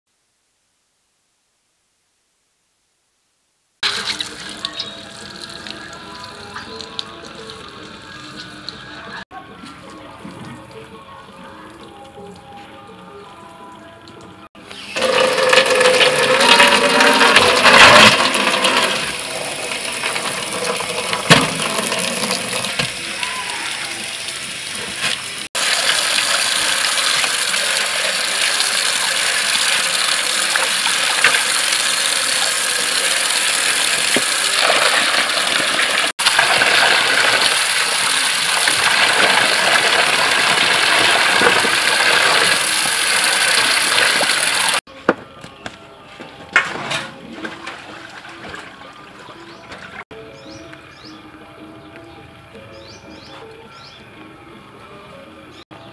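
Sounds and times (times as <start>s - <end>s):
hose water running into metal basin: 3.8s - 9.2s, 13.6s - 44.8s.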